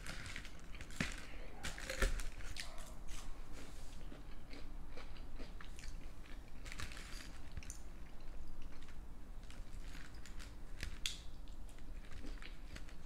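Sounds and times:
close chewing mouth sounds: 0.1 - 6.9.

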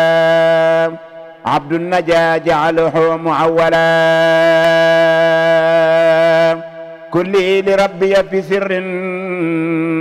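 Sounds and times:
man chanting a long note: 0.0 - 10.0.

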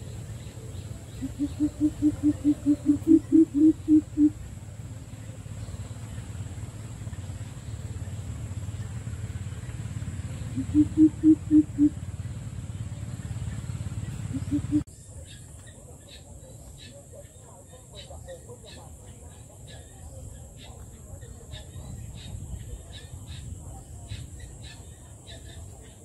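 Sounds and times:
bird hooting call: 0.0 - 4.5, 10.4 - 12.1, 14.1 - 17.2
low background hum: 0.0 - 26.0.

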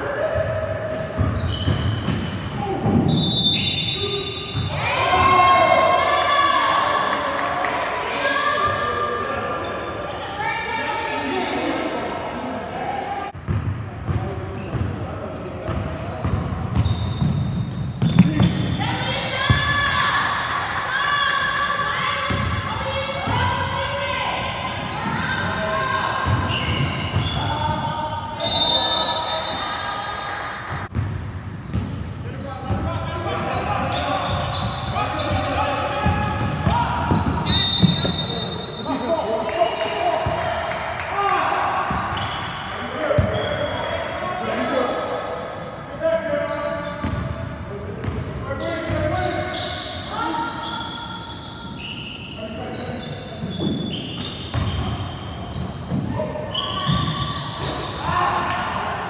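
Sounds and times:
players calling out: 47.9 - 59.0.

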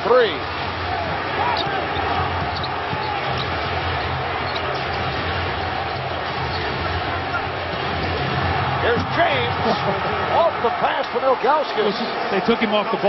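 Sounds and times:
arena crowd noise: 0.0 - 13.0.

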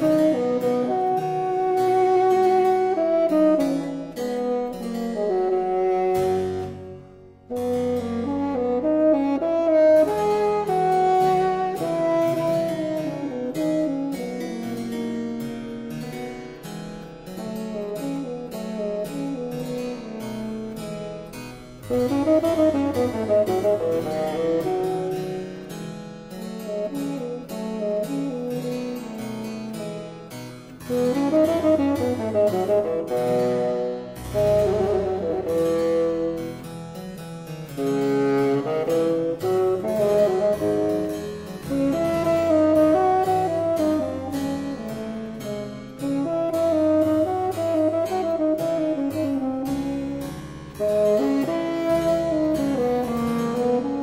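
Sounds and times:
bassoon melody: 0.0 - 16.1, 17.0 - 54.0
harpsichord accompaniment: 6.5 - 54.0.

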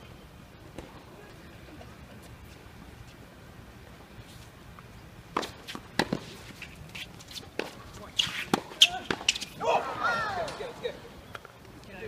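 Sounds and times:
tennis ball bouncing on hard court: 5.3 - 6.3, 7.6 - 9.5
tennis ball hit by rackets: 5.3 - 6.4, 7.6 - 9.5.

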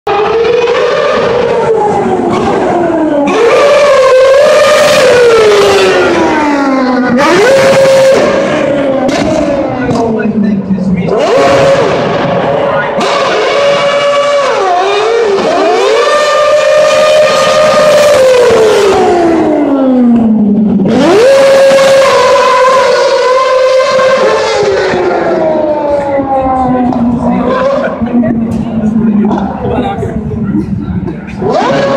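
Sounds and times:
race car engine revving: 0.1 - 31.9.

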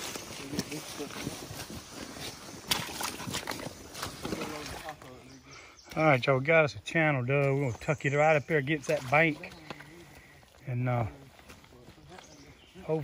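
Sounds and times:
men talking at a distance: 0.0 - 2.3, 3.6 - 13.0
shovel digging into mud: 2.6 - 4.8.

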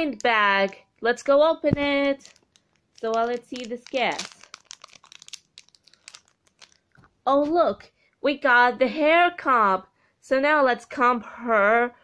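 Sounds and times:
plastic wrapper crinkling: 1.6 - 7.2.

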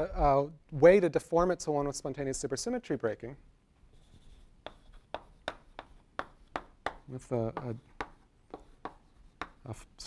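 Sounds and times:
chalk tapping on blackboard: 4.0 - 9.8.

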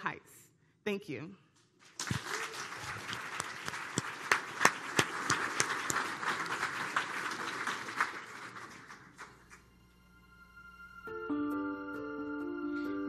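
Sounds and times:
audience applauding: 1.8 - 9.7.

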